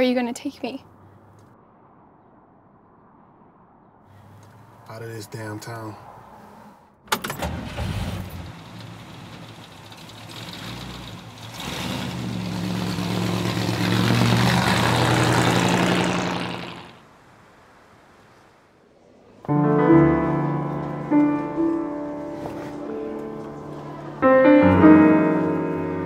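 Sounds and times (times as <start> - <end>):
car engine driving by: 4.1 - 26.0.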